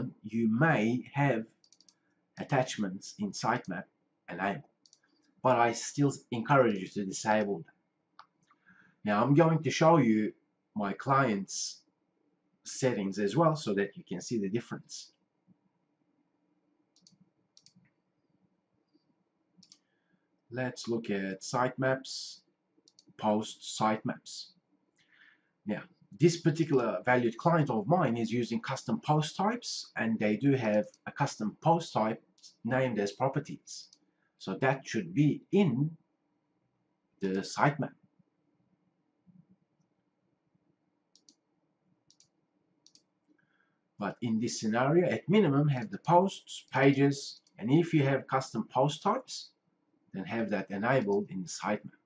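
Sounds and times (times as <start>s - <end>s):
faint computer mouse clicks: 1.6s - 2.1s, 4.7s - 5.4s, 16.9s - 18.0s, 18.9s - 19.9s, 22.8s - 23.2s, 41.1s - 41.4s, 42.1s - 43.5s.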